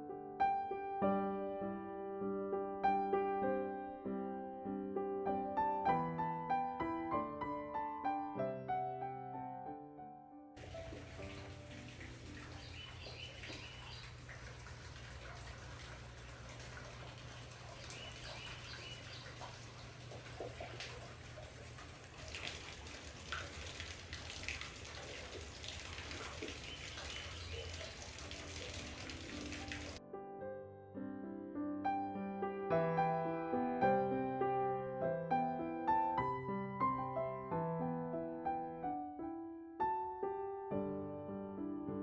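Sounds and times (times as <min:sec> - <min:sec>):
piano music: 0:00.0 - 0:16.4, 0:26.6 - 0:42.0
birds chirping: 0:10.6 - 0:22.1, 0:25.8 - 0:30.0
water dripping and trickling: 0:10.6 - 0:30.0.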